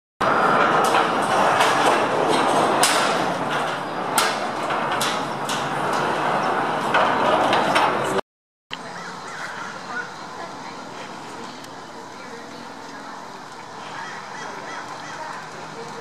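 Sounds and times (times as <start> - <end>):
machinery rumble: 0.2 - 16.0
open-air background: 0.2 - 16.0
cabins clacking and knocking: 0.6 - 8.2.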